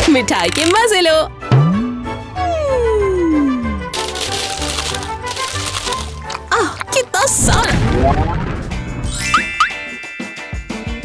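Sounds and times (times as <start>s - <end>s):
tone gliding downward: 1.5s - 3.8s
candies pouring from glass: 4.0s - 7.1s
background music with a beat: 9.6s - 11.0s.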